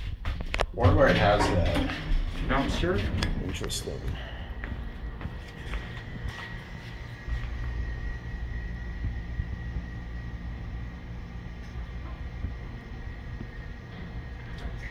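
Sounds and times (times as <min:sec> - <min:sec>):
low rumble: 0:00.0 - 0:14.9.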